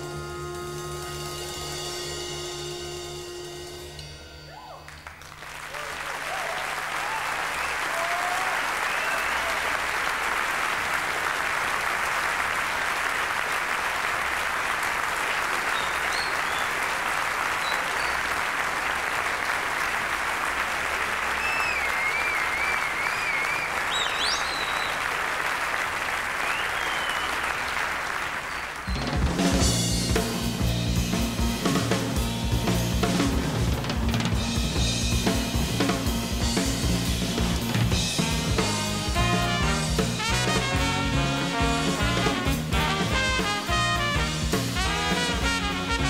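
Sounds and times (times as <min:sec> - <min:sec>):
audience applauding: 0:00.4 - 0:02.2, 0:04.8 - 0:29.8
crowd whistling: 0:05.8 - 0:09.9, 0:15.2 - 0:18.9, 0:21.0 - 0:29.3.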